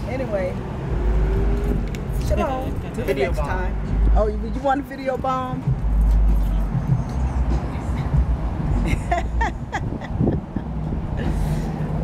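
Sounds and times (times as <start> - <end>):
low rumble of traffic: 0.0 - 12.0.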